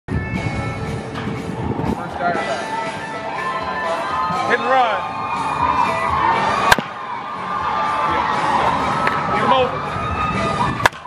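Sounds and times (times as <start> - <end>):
background music with held notes: 0.1 - 11.0.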